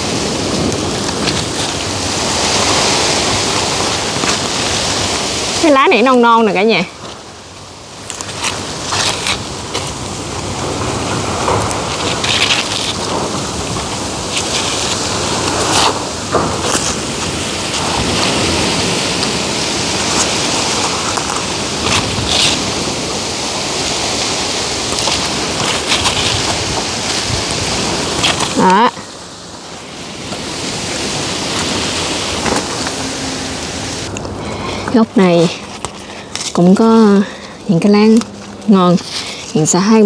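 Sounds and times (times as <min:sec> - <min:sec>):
leaves rustling: 0:00.0 - 0:40.0
sharp leaf crackles: 0:00.0 - 0:40.0.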